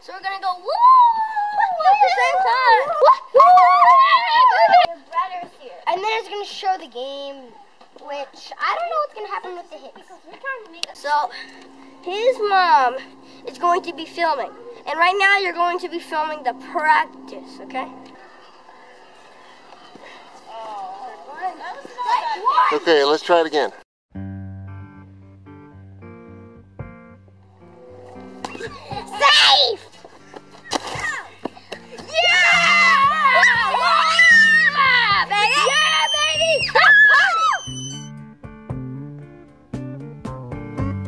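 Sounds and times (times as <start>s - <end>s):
children shouting and cheering: 0.0s - 22.9s, 28.4s - 29.9s, 30.6s - 38.1s
faint outdoor background noise: 0.0s - 23.8s
plucked guitar music: 10.4s - 19.6s, 24.1s - 36.5s, 38.1s - 41.0s.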